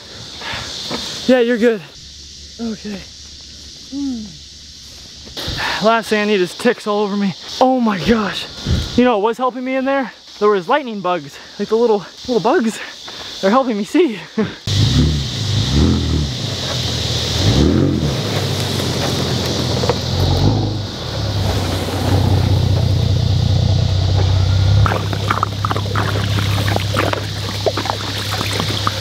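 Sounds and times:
truck engine revving and idling: 14.7 - 29.0.

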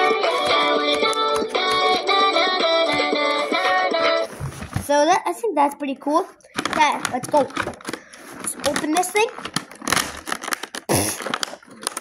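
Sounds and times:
plastic toys clicking and knocking: 6.4 - 12.0.

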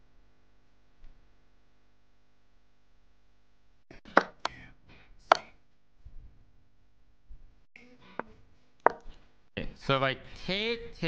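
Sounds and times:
chess piece move clicks: 4.1 - 4.6, 8.2 - 9.2.

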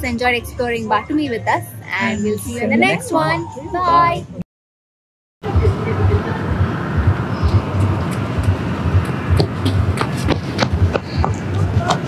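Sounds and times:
low rumble: 5.4 - 11.9.

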